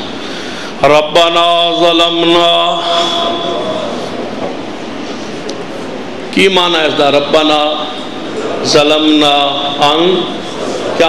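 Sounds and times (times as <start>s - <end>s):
microphone hiss and rumble: 0.0s - 11.0s.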